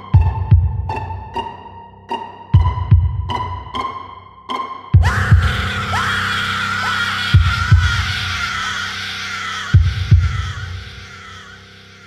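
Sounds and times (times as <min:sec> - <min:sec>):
heartbeat thumps: 0:00.2 - 0:01.1, 0:02.6 - 0:03.5, 0:05.0 - 0:05.8, 0:07.4 - 0:08.4, 0:09.8 - 0:10.9
eerie noisy drone: 0:05.0 - 0:12.0.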